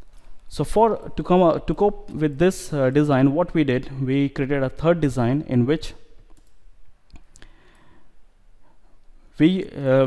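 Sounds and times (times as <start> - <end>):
faint room noise: 0.0 - 10.0
computer mouse clicks: 6.2 - 7.9.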